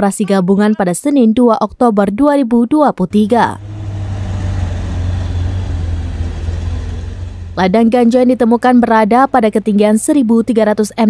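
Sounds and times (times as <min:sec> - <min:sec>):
truck engine droning: 0:03.1 - 0:10.8.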